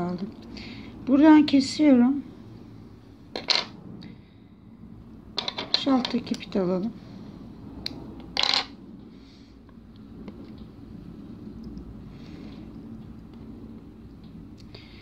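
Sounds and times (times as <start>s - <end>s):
low background noise: 0.0s - 15.0s.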